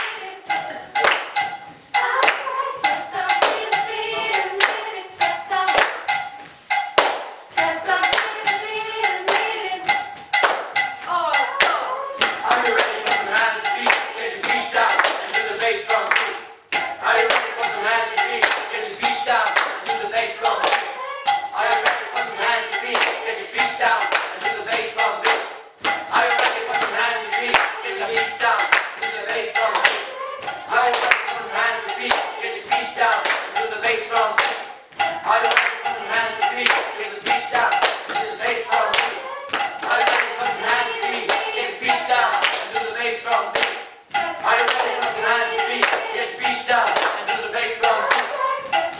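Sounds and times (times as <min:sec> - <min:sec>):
hand clapping: 0:01.0 - 0:04.9, 0:05.7 - 0:07.4, 0:08.1 - 0:08.6, 0:09.2 - 0:48.9
person singing: 0:11.1 - 0:16.1.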